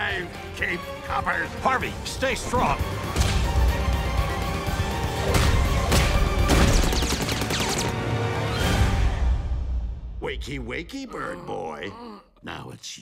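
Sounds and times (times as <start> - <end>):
dramatic trailer music: 0.0 - 11.0.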